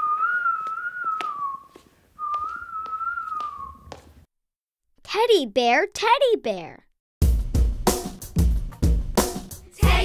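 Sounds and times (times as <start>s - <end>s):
person whistling a tune: 0.0s - 3.9s
footsteps on hard floor: 0.6s - 4.3s.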